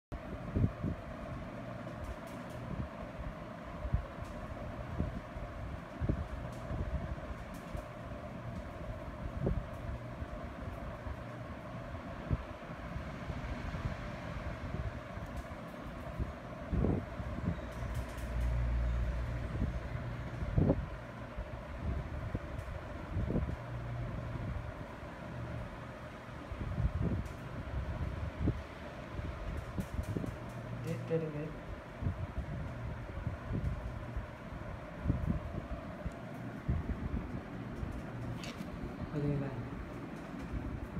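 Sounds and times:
low mechanical hum: 0.1 - 40.9
heavy low rumble: 26.4 - 40.9.

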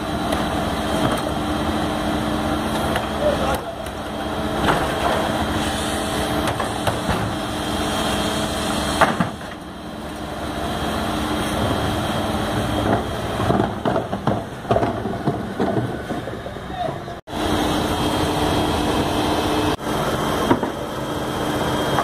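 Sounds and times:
garbage truck humming: 0.0 - 22.0.

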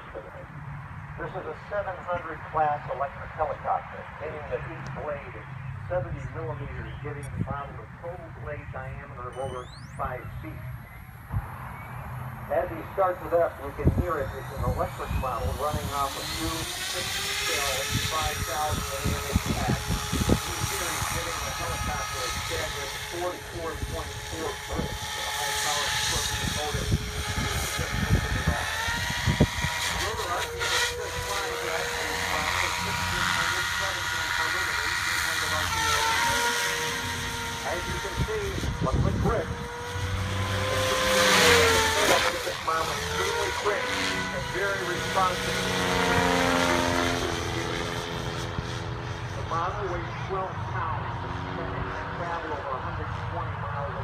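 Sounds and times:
rc helicopter rotor whine: 0.0 - 54.0.

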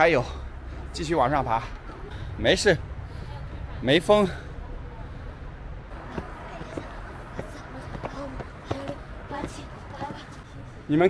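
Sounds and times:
steady low rumble: 0.0 - 10.8
faint voices: 3.1 - 10.9
footsteps on stone steps: 5.9 - 10.4.

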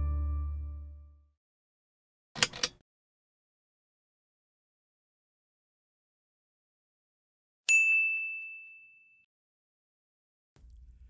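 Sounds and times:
bright bell-like ding: 7.7 - 9.2.

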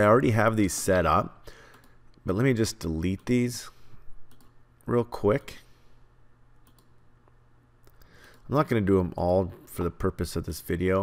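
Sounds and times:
steady room hum: 0.0 - 11.0
faint computer mouse clicks: 6.6 - 6.9.

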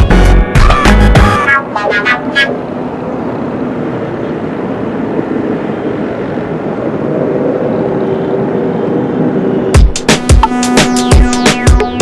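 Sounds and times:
bus engine drone: 0.0 - 12.0
road noise: 0.0 - 12.0.

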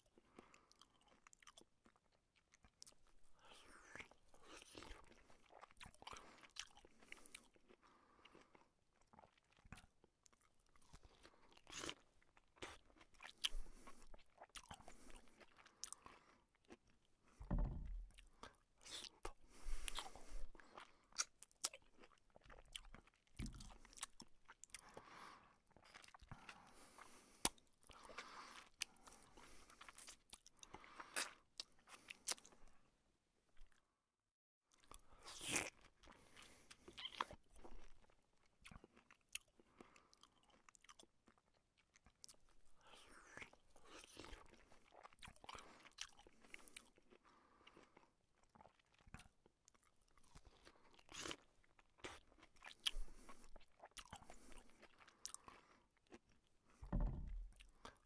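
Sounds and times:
person chewing food: 0.0 - 32.9, 34.7 - 58.0.

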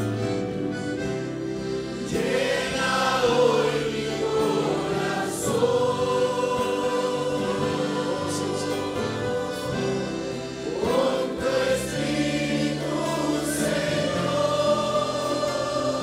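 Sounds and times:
congregation singing worship chorus: 0.0 - 16.0.

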